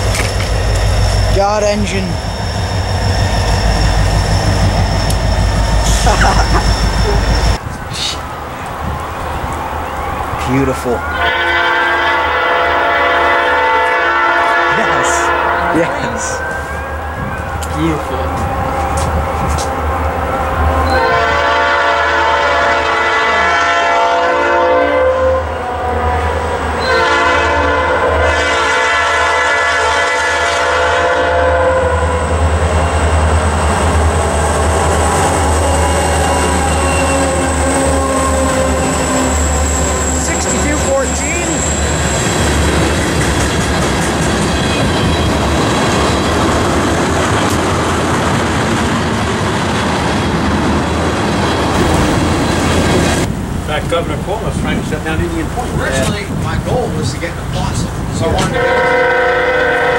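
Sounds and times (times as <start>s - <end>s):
tank cars rumbling over rails: 0.0s - 16.4s, 32.0s - 59.9s
diesel locomotive engines running: 0.0s - 59.9s
locomotive horn blasts: 11.1s - 16.4s, 18.2s - 32.4s, 58.4s - 59.9s.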